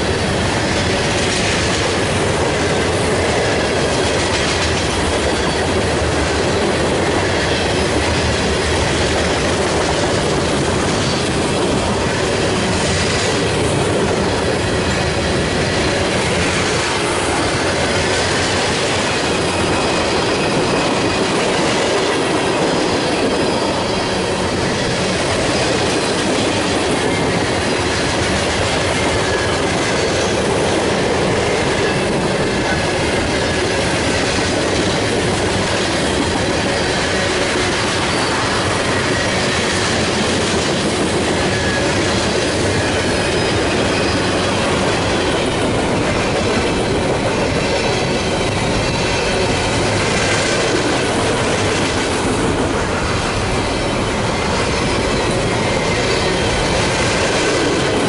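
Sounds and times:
train wheels on rails: 0:00.0 - 0:58.0.

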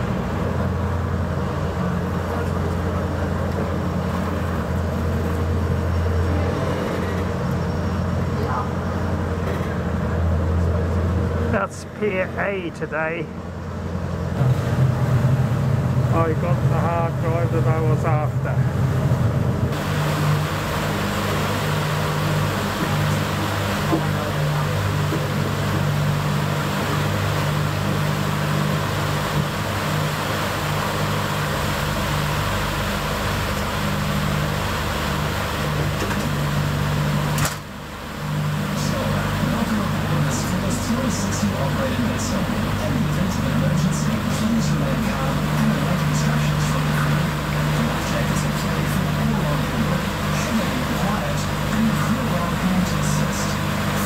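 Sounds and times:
ferry engines droning: 0:00.0 - 0:54.0
wind and water noise: 0:00.0 - 0:54.0.

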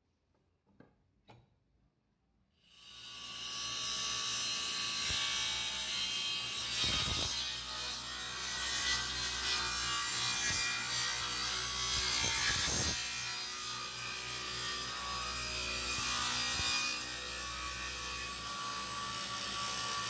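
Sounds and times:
table saw cutting wood: 0:02.6 - 0:20.0.

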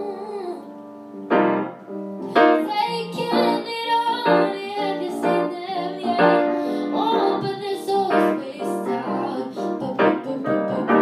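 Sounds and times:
boy singing into a microphone: 0:00.0 - 0:00.8, 0:02.5 - 0:11.0
grand piano chords: 0:00.0 - 0:11.0.

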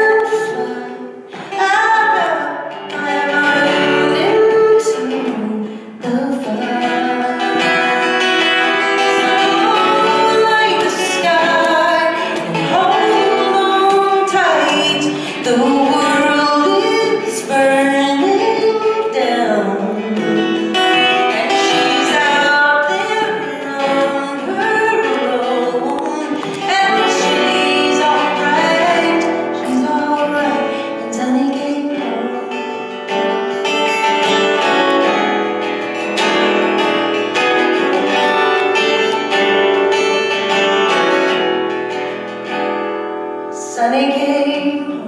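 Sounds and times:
woman singing: 0:00.0 - 0:40.1, 0:43.4 - 0:45.0
strummed acoustic guitar: 0:00.0 - 0:45.0.

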